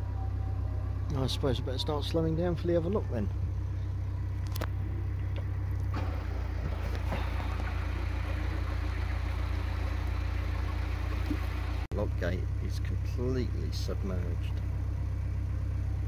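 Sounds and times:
diesel boat engine running: 0:00.0 - 0:16.0.

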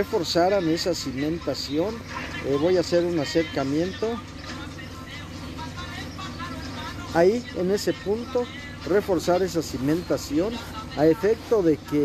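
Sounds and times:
engine running low hum: 0:00.0 - 0:12.0
faint distant voices: 0:00.0 - 0:12.0.

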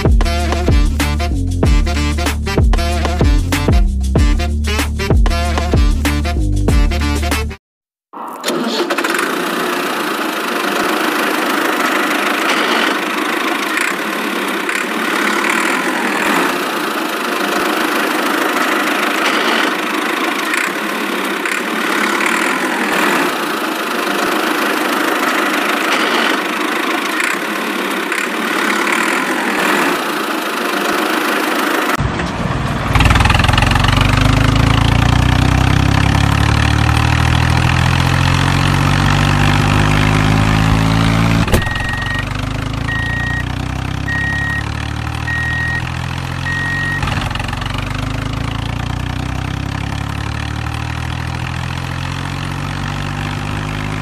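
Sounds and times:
engine running steadily: 0:08.5 - 0:54.0
deeper engine rising in pitch: 0:28.0 - 0:54.0.

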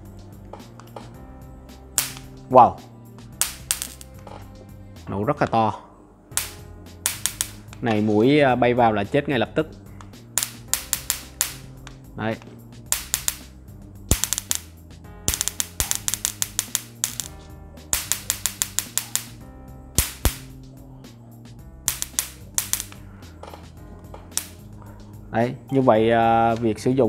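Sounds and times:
electric arcing snaps: 0:02.0 - 0:02.4, 0:03.4 - 0:04.2, 0:06.3 - 0:07.9, 0:10.4 - 0:11.9, 0:12.9 - 0:13.5, 0:14.1 - 0:19.4, 0:20.0 - 0:20.6, 0:21.9 - 0:23.0, 0:24.3 - 0:24.6.

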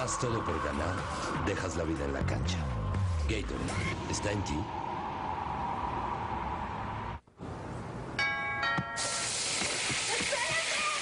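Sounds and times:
steady hiss: 0:09.0 - 0:11.0.

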